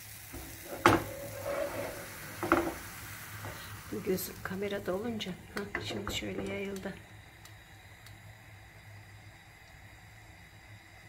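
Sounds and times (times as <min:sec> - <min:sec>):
batter hissing in frying pan: 0:00.0 - 0:11.0.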